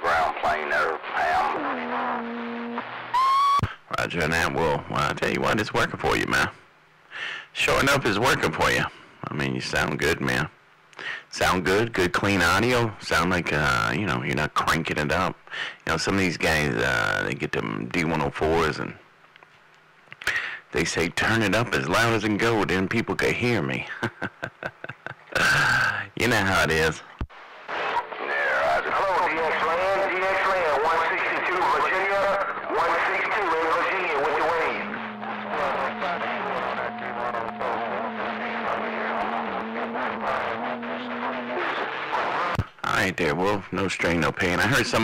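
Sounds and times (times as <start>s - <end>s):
man talking over radio: 0.0s - 2.8s, 27.8s - 45.0s
radio noise burst: 0.0s - 6.5s, 25.5s - 43.0s, 44.0s - 45.0s
radio roger beep: 1.0s - 3.7s, 31.1s - 42.6s
man chuckling over radio: 23.8s - 26.1s.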